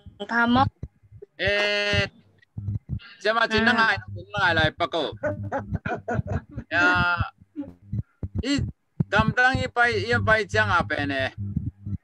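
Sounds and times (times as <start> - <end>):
person hesitating ehh: 5.1 - 8.7.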